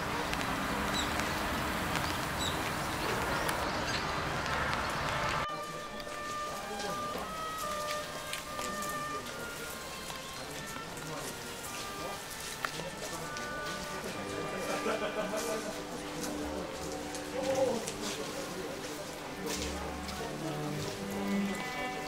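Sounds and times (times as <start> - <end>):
rain hissing: 0.0 - 5.4, 6.2 - 22.0
faint voices: 0.0 - 22.0.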